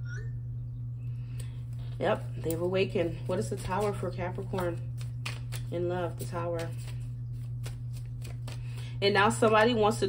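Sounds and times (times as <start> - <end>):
steady low hum: 0.0 - 10.0
cards being shuffled: 1.7 - 9.7.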